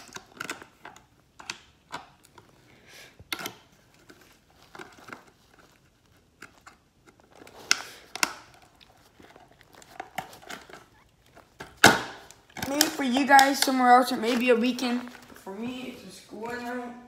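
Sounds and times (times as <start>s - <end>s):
rustling and crinkling: 0.0s - 17.0s.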